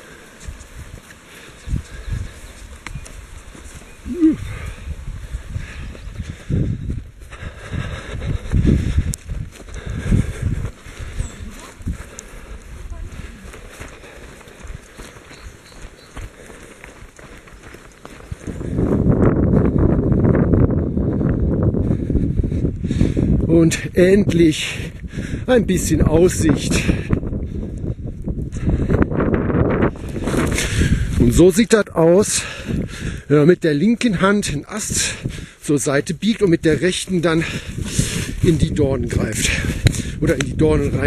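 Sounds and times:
running footsteps on wet grass: 0.0 - 41.0
wind buffeting microphone: 0.0 - 41.0.

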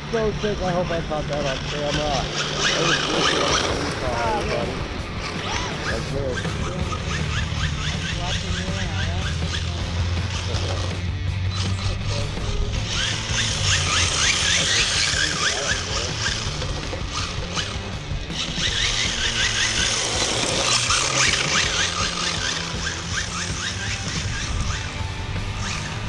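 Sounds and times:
electric motor whining: 0.0 - 26.0
music: 0.1 - 26.0
toy car tyres sliding on asphalt: 0.6 - 26.0.

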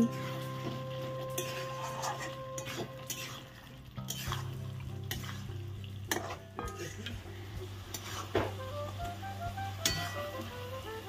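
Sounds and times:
soft sizzle of frying: 0.0 - 11.0
spatula scraping curry in pan: 0.1 - 7.2, 7.9 - 8.6.

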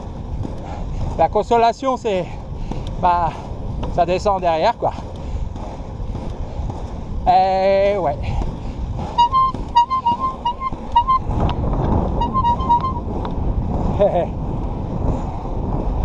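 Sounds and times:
skate wheels rolling on asphalt: 0.0 - 16.0
high-pitched beeping notes: 9.2 - 11.2, 12.2 - 13.0.

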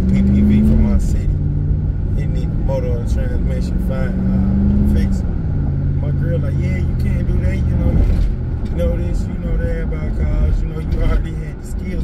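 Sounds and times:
car engine running: 0.0 - 12.0
road rumble: 0.0 - 12.0.

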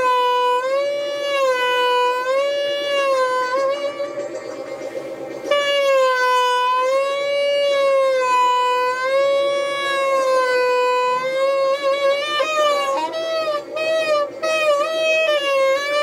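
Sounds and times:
alto saxophone long high note: 0.0 - 16.0.

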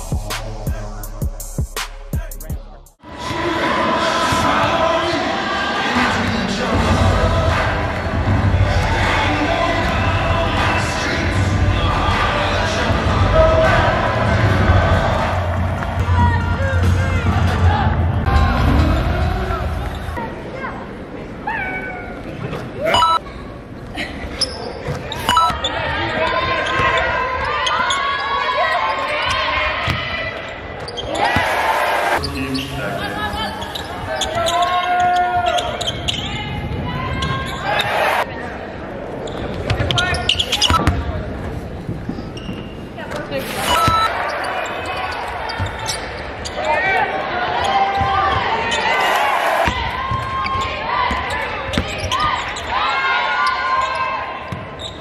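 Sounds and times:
voices in gym: 2.2 - 55.0.

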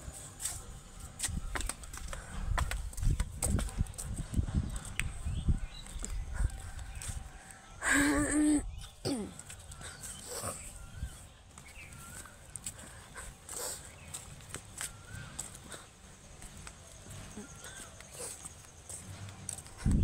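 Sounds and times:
footsteps on dry ground: 0.0 - 20.0.

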